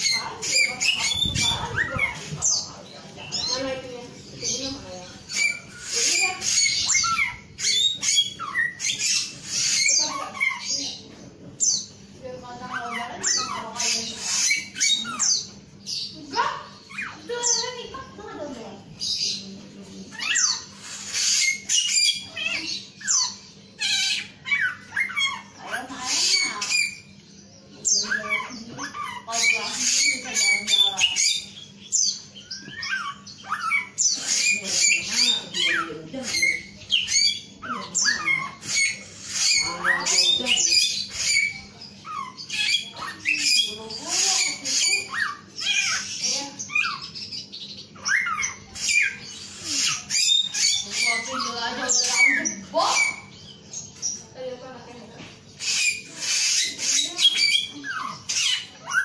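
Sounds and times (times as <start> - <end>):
songbird singing: 0.0 - 59.0.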